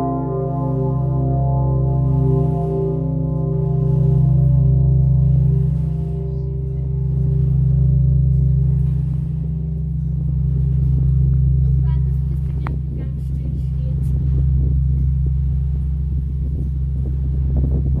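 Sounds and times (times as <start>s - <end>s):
large bell humming: 0.0s - 18.0s.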